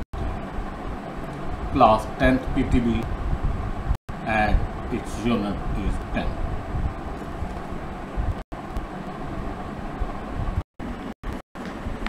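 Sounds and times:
low rumbling background noise: 0.2 - 12.0.

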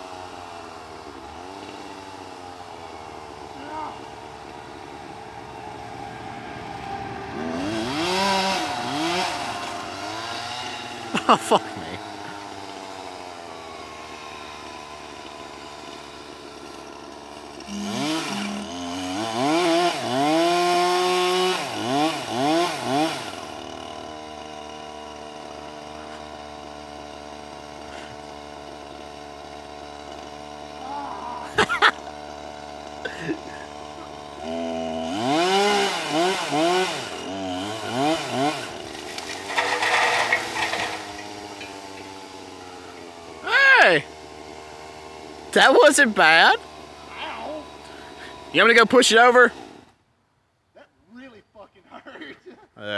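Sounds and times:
chainsaw revving and idling: 0.0 - 50.0.

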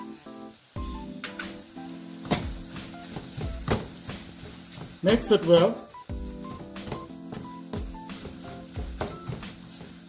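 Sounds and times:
background music: 0.0 - 10.0
faint sizzling: 0.0 - 10.0
wooden spatula knocking on wok: 2.2 - 5.4, 6.2 - 10.0.

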